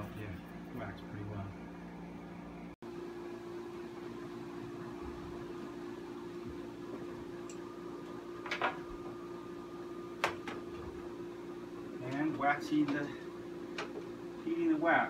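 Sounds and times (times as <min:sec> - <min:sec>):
steady mechanical hum: 0:00.0 - 0:15.0.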